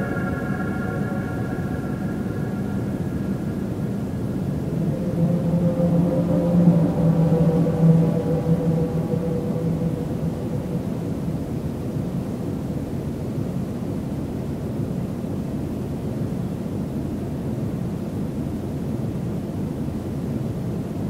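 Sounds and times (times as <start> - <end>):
faint organ-like tones: 0.0 - 11.3
low sustained notes: 0.0 - 12.5
rumbling hiss: 0.0 - 14.9.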